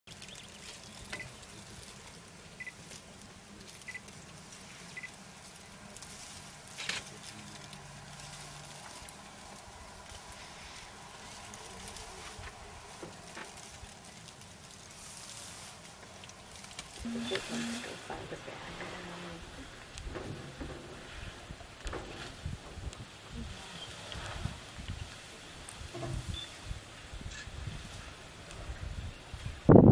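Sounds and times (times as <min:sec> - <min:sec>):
dry grass rustling: 0:00.1 - 0:29.8.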